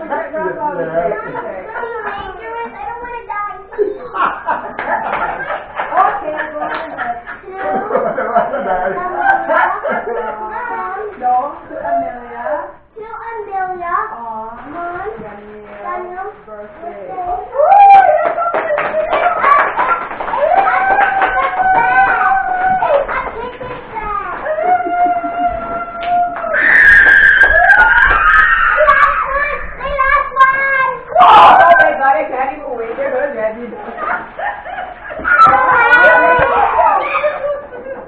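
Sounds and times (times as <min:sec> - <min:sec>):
family voices: 0:00.0 - 0:38.0
hand-clapping: 0:06.7 - 0:07.0, 0:18.0 - 0:28.5.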